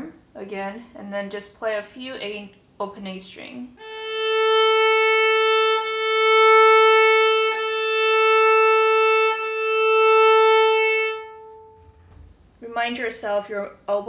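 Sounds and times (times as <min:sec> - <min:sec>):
viola long bowed notes: 0:03.8 - 0:12.1.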